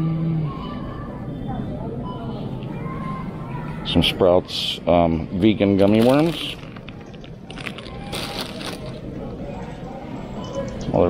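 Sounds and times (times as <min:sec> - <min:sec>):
plastic bag crinkling: 0:05.8 - 0:09.1.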